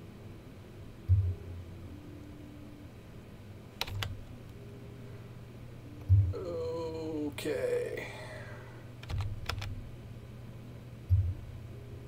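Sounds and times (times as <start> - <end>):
low room hum: 0.0 - 12.0
dull low thump: 6.1 - 6.4.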